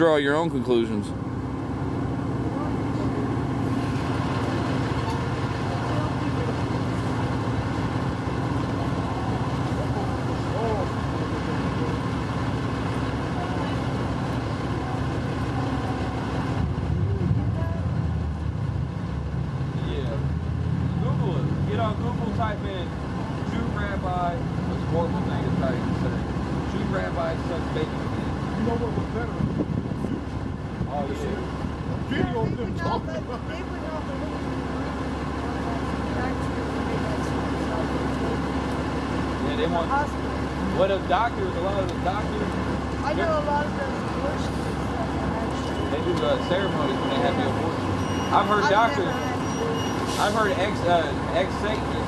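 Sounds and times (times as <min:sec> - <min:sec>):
buses idling: 0:00.0 - 0:52.0
city traffic rumble: 0:00.0 - 0:52.0
faint voices talking: 0:02.0 - 0:18.4, 0:19.4 - 0:52.0.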